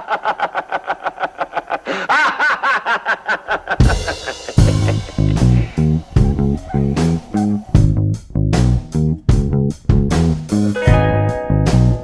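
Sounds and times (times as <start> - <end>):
person laughing hard: 0.0 - 7.8.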